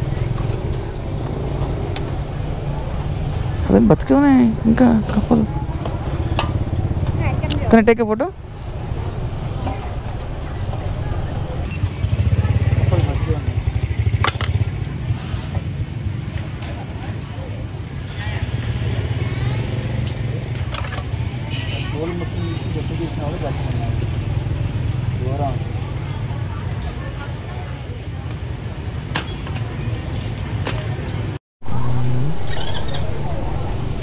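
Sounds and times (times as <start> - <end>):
motorbike engine rumbling: 0.0 - 34.0.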